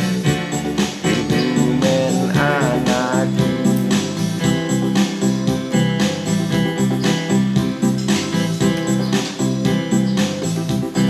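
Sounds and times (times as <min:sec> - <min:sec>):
steady beat: 0:00.0 - 0:11.0
strummed guitar over keyboard: 0:00.0 - 0:11.0
person singing: 0:01.0 - 0:04.2.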